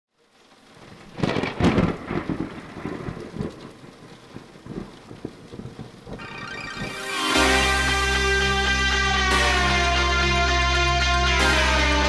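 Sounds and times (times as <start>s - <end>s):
rain: 0.1s - 12.0s
crackling thunderclap: 0.3s - 7.9s
deep thunder rumble: 0.8s - 7.0s.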